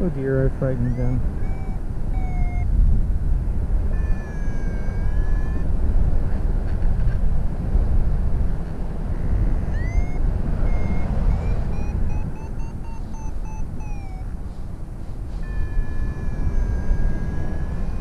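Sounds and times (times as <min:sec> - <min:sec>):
variometer electronic beeps: 0:00.4 - 0:02.7, 0:03.9 - 0:05.7, 0:09.4 - 0:14.4, 0:15.4 - 0:18.0.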